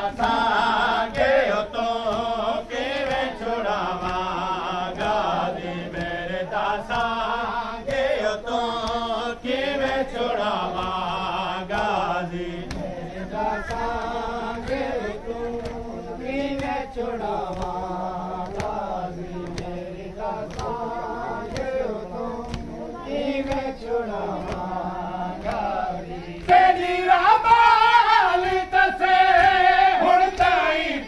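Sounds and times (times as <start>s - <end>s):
men chanting in unison: 0.0s - 31.0s
chest-beating slaps: 0.1s - 11.1s, 11.7s - 19.8s, 20.4s - 21.8s, 22.4s - 22.8s, 23.4s - 24.8s.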